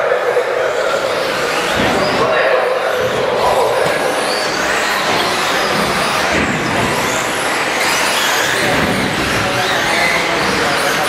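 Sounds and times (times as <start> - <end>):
faint motor whines: 0.0 - 11.0.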